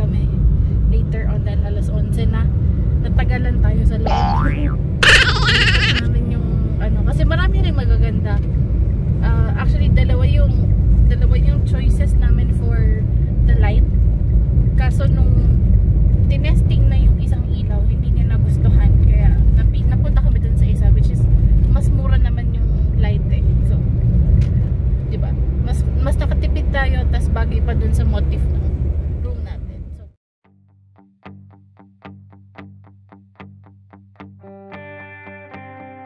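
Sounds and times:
car engine and tyres rumble: 0.0 - 5.0, 6.0 - 30.1
woman talking: 0.0 - 8.5, 9.2 - 13.9, 14.8 - 15.6, 16.3 - 23.9, 25.1 - 30.2.

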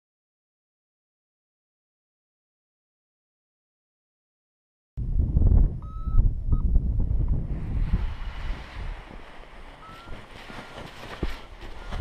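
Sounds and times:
wind buffeting microphone: 5.0 - 12.0
short high beeps: 5.8 - 6.7, 9.8 - 10.2.

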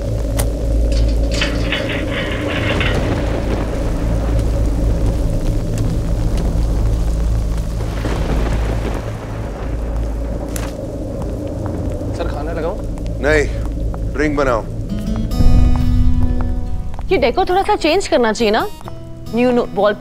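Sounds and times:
deep steady rumble: 0.0 - 20.0
heavy rain falling: 0.0 - 20.0.

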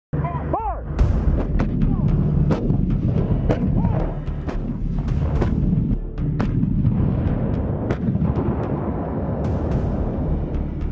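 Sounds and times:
low rumble: 0.2 - 10.9.

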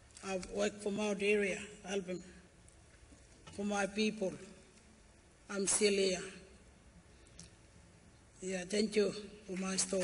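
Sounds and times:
man speaking: 8.4 - 10.0.

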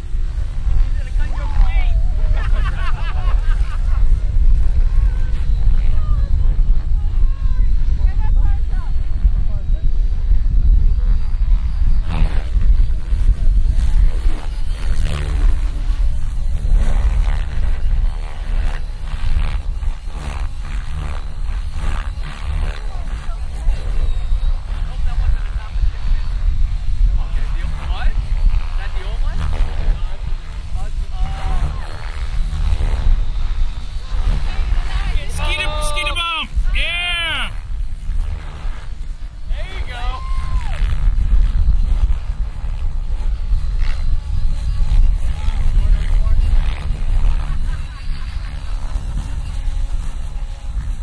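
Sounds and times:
heavy low rumble: 0.0 - 51.0
helicopter rotor blades whooshing: 0.0 - 51.0.

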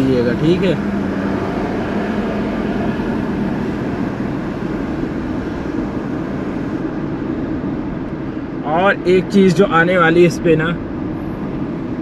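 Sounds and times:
car tyre and engine hum: 0.0 - 12.0.

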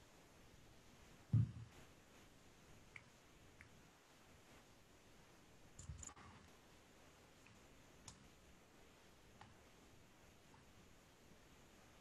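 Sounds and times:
faint clicks: 7.4 - 8.3.

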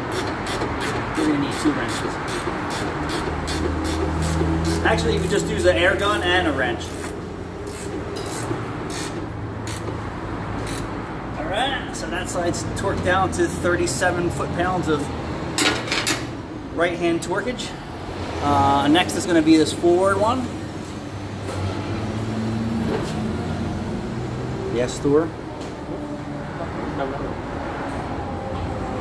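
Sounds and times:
ratchet wrench clicking: 0.1 - 5.4, 6.8 - 10.0, 10.6 - 11.0.

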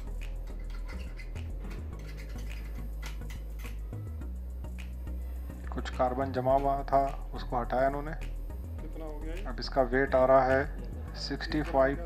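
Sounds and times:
metal tool scraping metal bar: 0.0 - 3.8
steady low hum: 0.0 - 12.0.

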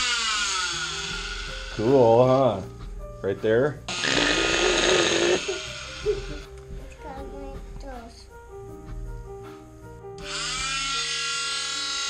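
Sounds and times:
cast saw buzzing: 0.0 - 2.3, 3.9 - 6.5, 10.2 - 12.0
background music: 0.0 - 12.0.

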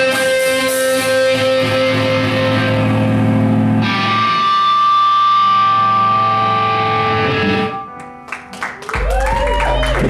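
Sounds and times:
distorted electric guitar chord: 0.0 - 7.8.

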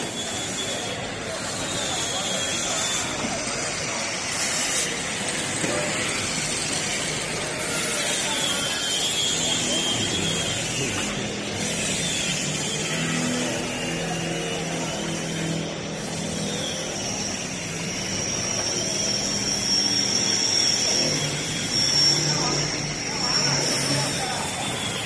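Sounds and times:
high-pitched whine: 0.0 - 25.0
indistinct workers' voices: 0.0 - 25.0
machinery noise: 0.0 - 25.0.

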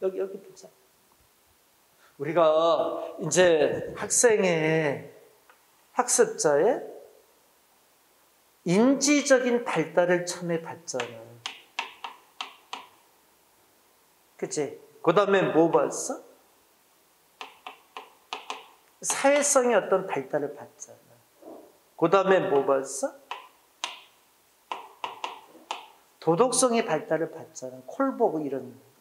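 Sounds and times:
chalk tapping on blackboard: 10.9 - 13.0, 17.4 - 19.6, 22.3 - 26.0.

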